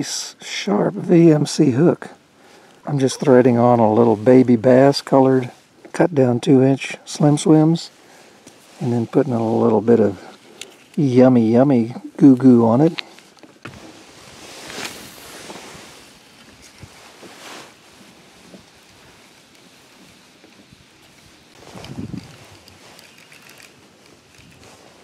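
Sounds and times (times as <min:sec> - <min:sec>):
faint outdoor background noise: 0:00.0 - 0:25.0
rustling: 0:02.1 - 0:25.0.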